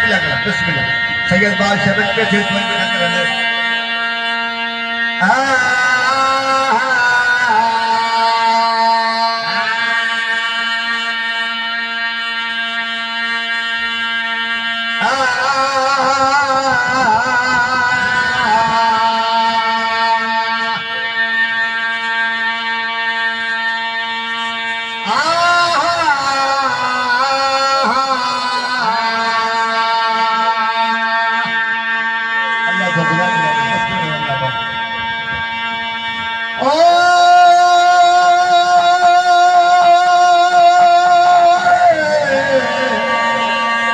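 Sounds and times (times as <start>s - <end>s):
man chanting into a microphone: 0.0s - 43.9s
steady drone note: 0.0s - 43.9s.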